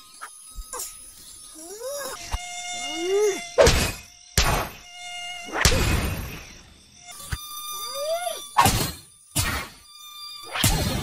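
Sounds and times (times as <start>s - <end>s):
cartoon mosquito buzzing: 0.0s - 11.0s.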